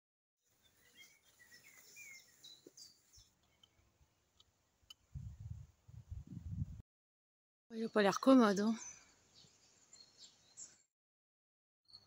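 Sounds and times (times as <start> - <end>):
faint birds chirping: 0.4 - 5.2, 7.7 - 10.9.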